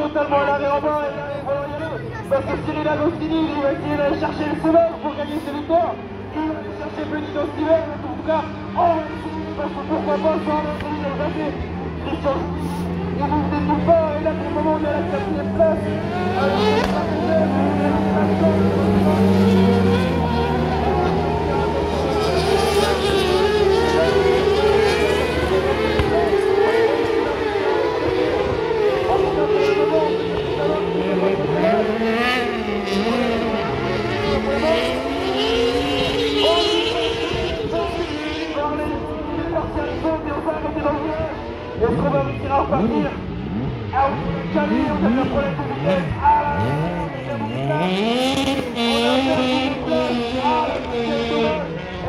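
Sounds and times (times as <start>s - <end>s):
announcer speaking over loudspeaker: 0.0s - 52.0s
racing buggy engines: 0.0s - 52.0s.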